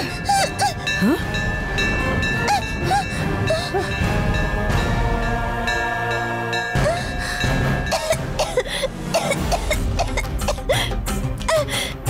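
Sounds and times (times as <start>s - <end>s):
girl coughing and choking: 7.9s - 11.7s.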